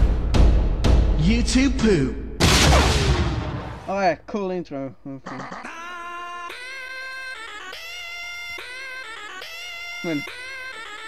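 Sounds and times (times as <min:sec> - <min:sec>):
explosion rumble: 0:02.4 - 0:03.9
stuttering chopped voice clip: 0:05.2 - 0:06.6.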